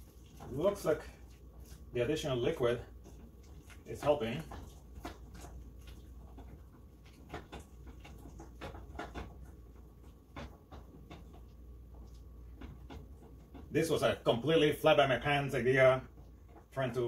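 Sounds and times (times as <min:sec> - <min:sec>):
wooden spoon scraping a pot: 0:00.0 - 0:17.0.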